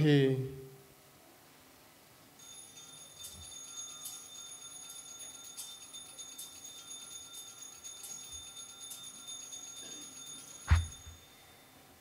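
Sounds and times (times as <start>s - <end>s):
altar bells ringing: 2.4s - 12.0s.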